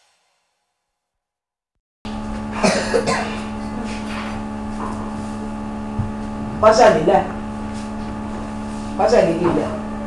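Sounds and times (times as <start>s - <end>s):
electrical hum: 2.1s - 10.0s
person coughing: 2.6s - 3.5s.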